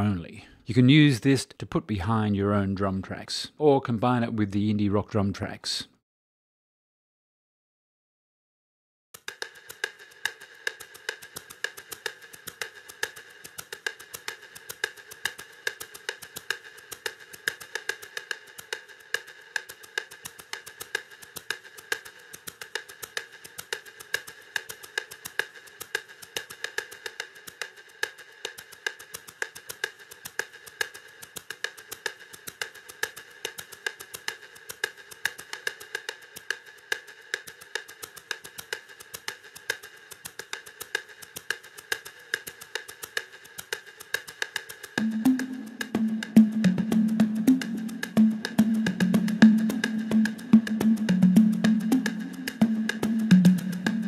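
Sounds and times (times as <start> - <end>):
drum machine percussion: 9.2 - 54.0.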